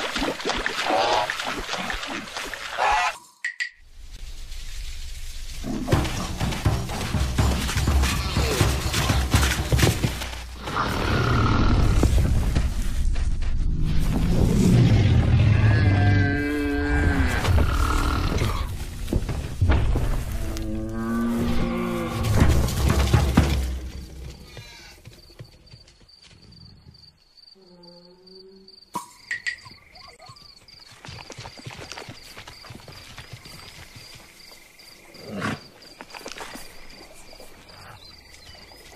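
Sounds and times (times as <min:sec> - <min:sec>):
soft hoof-like knocks: 0:05.8 - 0:10.5
high insect chirp: 0:20.3 - 0:38.9
steady insect trill: 0:23.5 - 0:38.9
drawn-out pitched animal call: 0:24.4 - 0:25.1.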